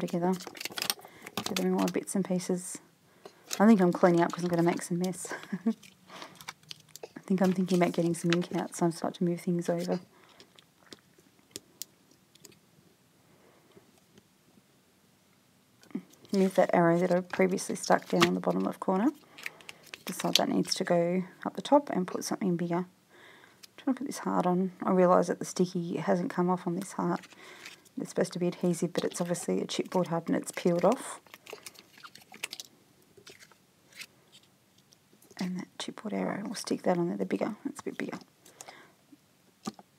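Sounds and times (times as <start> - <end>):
paper and card being handled: 0.0 - 2.0, 3.5 - 8.8, 16.3 - 18.8, 19.4 - 20.8, 27.0 - 27.8, 28.8 - 34.5.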